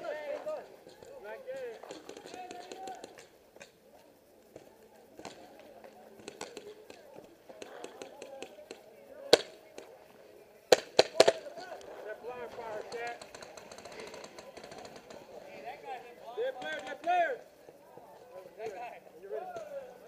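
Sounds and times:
faint shouting voices: 0.0 - 20.0
paintball marker shots: 6.2 - 7.0, 10.7 - 11.5.

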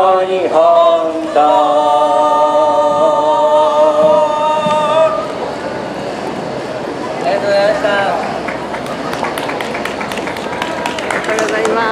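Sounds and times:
outdoor background noise: 0.0 - 11.9.

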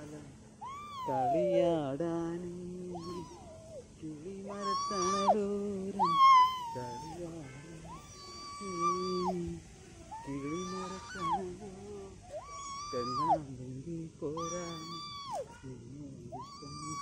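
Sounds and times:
swing hangers squeaking: 2.9 - 17.0.

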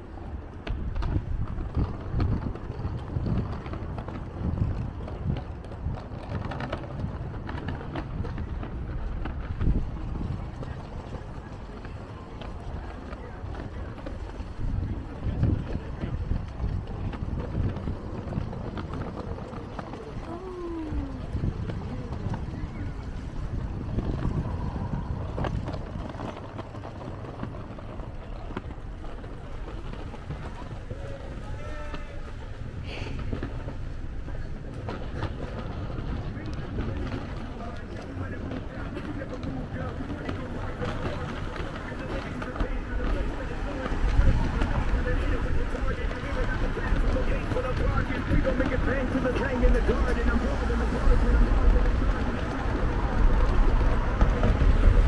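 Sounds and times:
traffic: 0.0 - 55.0
voices of passers-by: 0.0 - 55.0.

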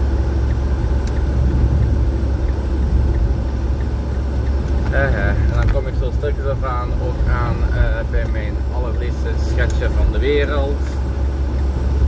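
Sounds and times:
van engine and road noise: 0.0 - 12.0.

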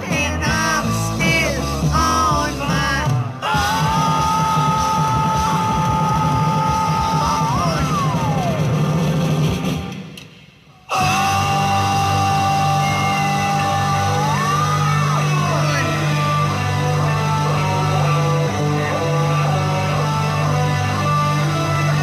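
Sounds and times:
rock music with held guitar notes: 13.5 - 22.0.

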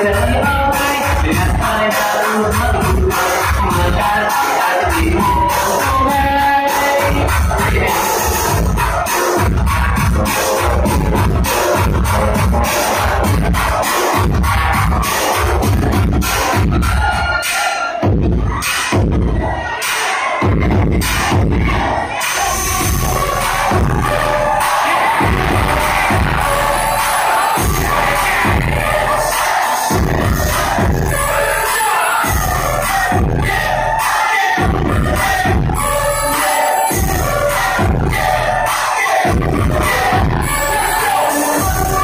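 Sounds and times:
crowd shouting and cheering: 0.0 - 42.0
dance music with pulsing bass: 0.0 - 42.0.

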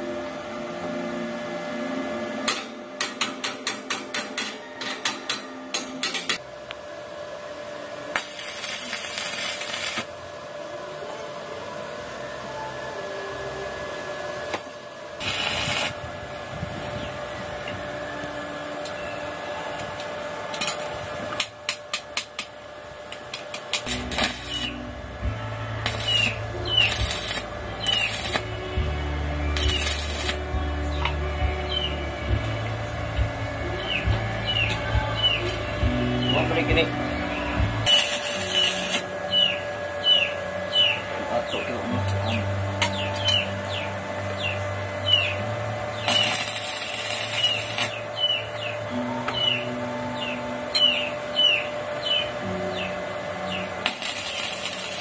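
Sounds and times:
sharp metal taps and clicks: 2.5 - 6.4
welding arc hissing and crackling: 8.0 - 10.2, 14.5 - 17.0, 20.6 - 48.6, 53.6 - 55.0.

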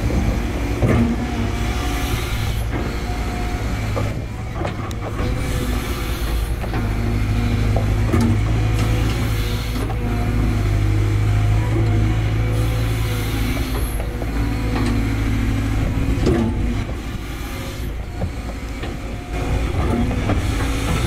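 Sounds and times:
excavator diesel engine: 0.0 - 21.0
hydraulic whine: 0.0 - 21.0.

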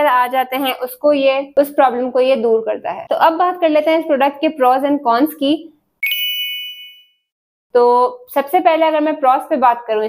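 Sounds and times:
woman speaking: 0.0 - 5.8, 7.8 - 10.0
bright bell ding: 6.0 - 7.2.

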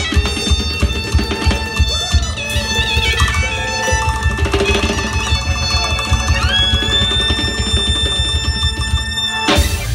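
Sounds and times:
steady drum beat: 0.0 - 9.9
clarinet holding high note: 1.0 - 9.9.

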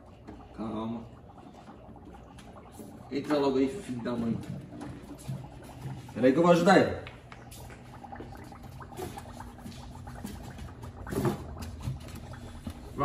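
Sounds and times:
low steady hum: 0.0 - 13.0
water sloshing in a plastic tub: 0.0 - 13.0.

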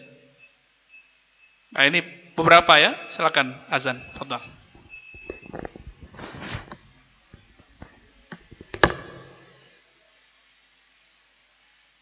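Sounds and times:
microphone handling clicks: 4.8 - 6.8.

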